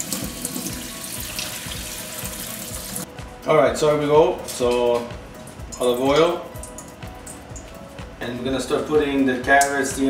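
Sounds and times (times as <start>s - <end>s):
kitchen tap running: 0.0s - 3.1s, 4.5s - 7.7s.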